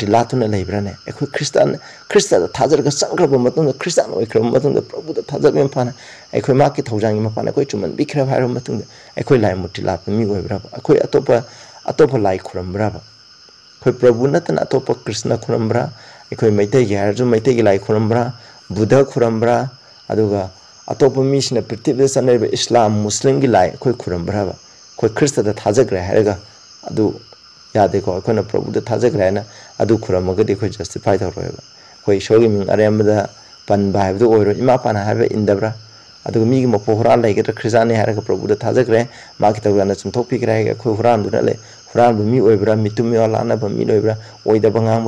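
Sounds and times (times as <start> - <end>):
man speaking: 0.0 - 13.0, 13.8 - 45.0
crickets trilling: 0.0 - 45.0.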